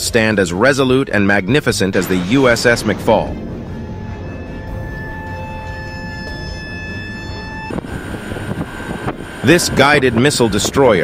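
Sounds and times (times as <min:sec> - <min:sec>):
ship engine rumbling: 0:00.0 - 0:11.0
steady held drone: 0:01.4 - 0:11.0
wind buffeting microphone: 0:02.2 - 0:11.0.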